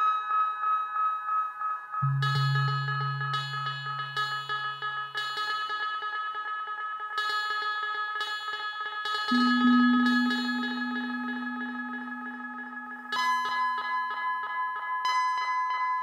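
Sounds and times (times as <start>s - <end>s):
low synthesizer note: 2.0s - 4.6s, 9.3s - 13.6s
ambient synthesizer music: 9.3s - 14.3s.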